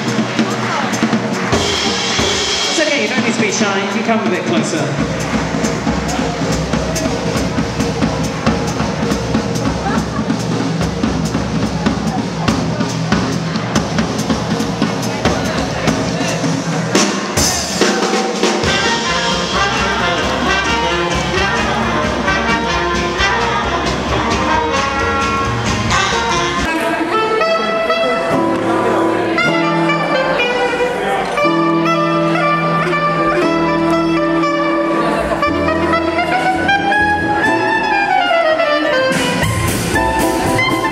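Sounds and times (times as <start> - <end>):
jazz band with trumpet and drums: 0.0 - 40.9.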